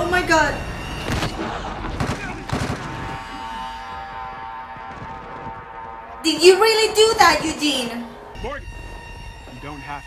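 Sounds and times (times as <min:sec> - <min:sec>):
gunshot-like bangs: 0:01.0 - 0:03.3.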